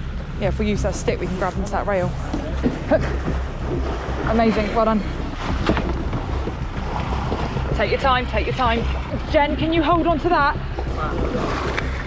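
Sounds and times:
water sloshing against boat: 0.0s - 12.0s
wind buffeting microphone: 0.0s - 12.0s.

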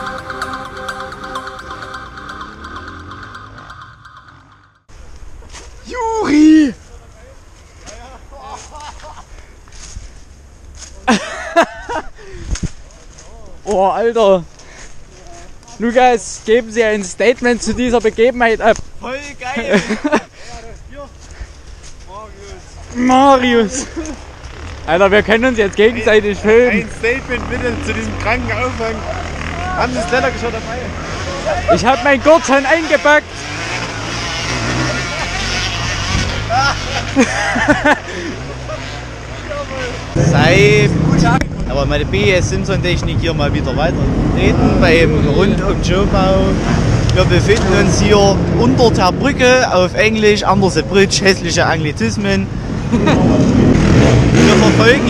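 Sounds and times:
motorcycle engines droning: 0.0s - 6.2s, 19.5s - 55.0s
voices: 12.9s - 55.0s.

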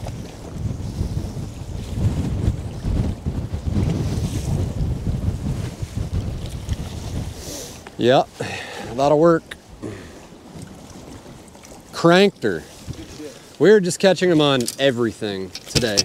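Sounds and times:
water slapping around boat: 0.0s - 8.0s, 9.4s - 14.8s, 15.4s - 16.0s
wind buffeting microphone: 0.0s - 16.0s.

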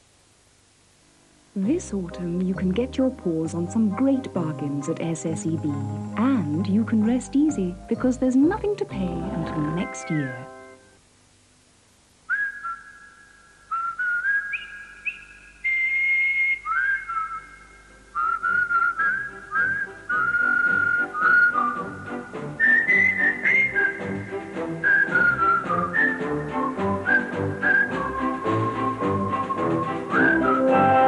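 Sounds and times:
person whistling a tune: 12.3s - 22.0s, 22.6s - 31.0s.

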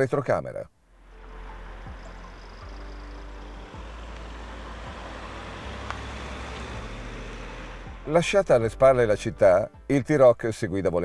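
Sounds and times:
car engine hum: 0.9s - 9.6s.

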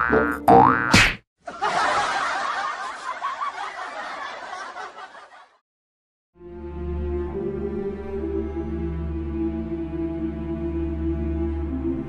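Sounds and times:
canned laughter: 1.4s - 5.6s.

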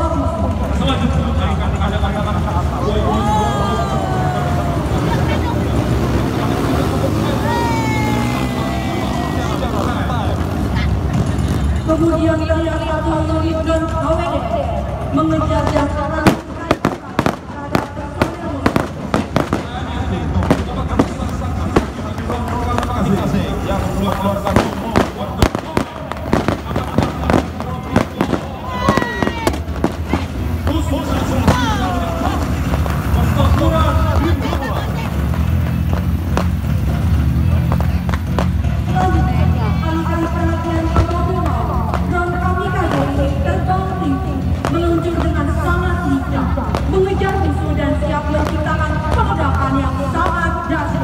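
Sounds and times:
steady low rumble: 12.8s - 51.0s.

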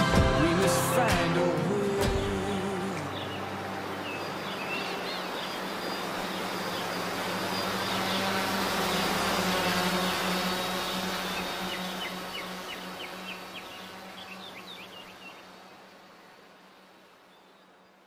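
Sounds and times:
birds chirping: 0.0s - 18.0s
drone propellers buzzing: 3.2s - 17.0s.

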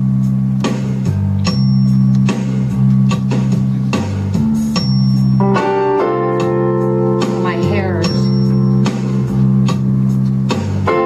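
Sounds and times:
electronic keyboard playing: 0.0s - 11.0s.

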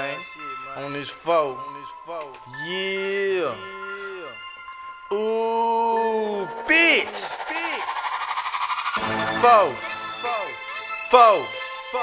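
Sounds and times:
rising tone: 5.6s - 11.7s.

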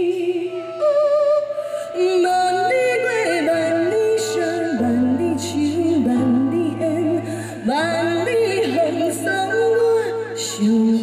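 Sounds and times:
instrumental backing music: 0.0s - 11.0s
woman singing into a microphone: 0.0s - 11.0s.

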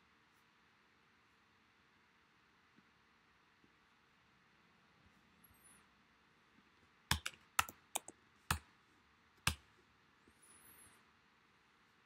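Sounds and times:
computer keyboard clicks: 7.1s - 8.6s.

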